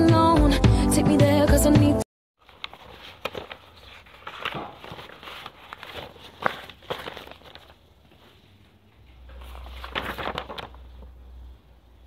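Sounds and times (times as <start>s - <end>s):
paper rustling and crinkling: 2.4s - 11.6s.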